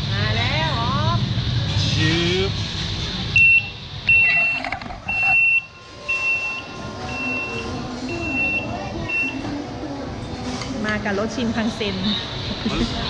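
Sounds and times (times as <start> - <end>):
high electronic beep: 3.4 - 9.4.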